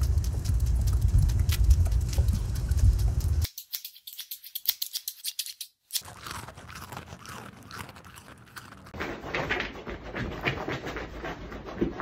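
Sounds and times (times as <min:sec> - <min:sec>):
dog chewing crunches: 0:00.0 - 0:03.5, 0:05.9 - 0:09.6
dog paws on pavement: 0:00.0 - 0:03.5
loud low rumble: 0:00.0 - 0:03.5.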